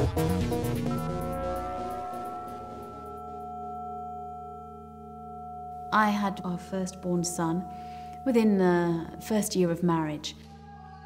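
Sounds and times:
large bell ringing hum: 0.8s - 10.3s.

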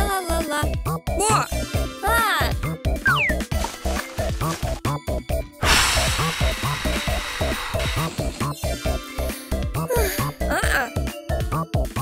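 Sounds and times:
cartoon music with bouncy bass: 0.0s - 5.6s
rushing air hiss: 5.6s - 8.6s.

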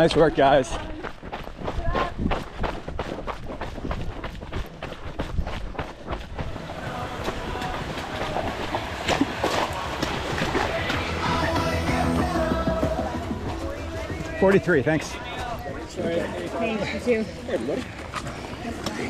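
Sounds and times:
running footsteps on gravel path: 0.0s - 19.0s
runner breathing: 0.5s - 11.4s, 12.8s - 19.0s
murmur of voices: 6.4s - 19.0s.

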